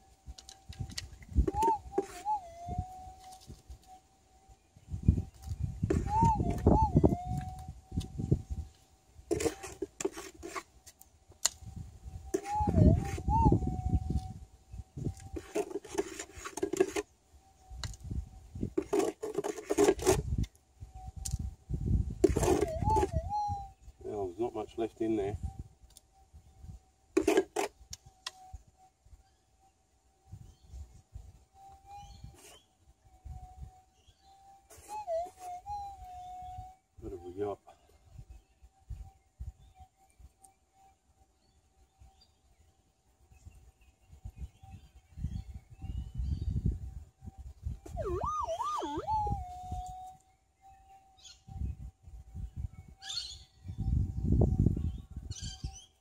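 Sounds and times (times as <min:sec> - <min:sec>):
soil being handled: 0:09.3 - 0:11.0, 0:15.1 - 0:17.1, 0:18.8 - 0:20.3.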